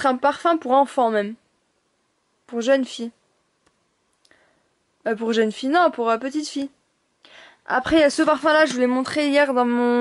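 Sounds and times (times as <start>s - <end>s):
woman speaking: 0.0s - 1.4s, 2.5s - 3.2s, 5.0s - 6.8s, 7.6s - 10.0s.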